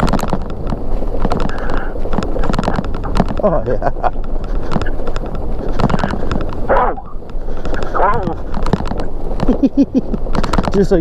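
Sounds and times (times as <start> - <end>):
bike knocking and rattling: 0.0 - 11.0
wind buffeting microphone: 0.0 - 11.0.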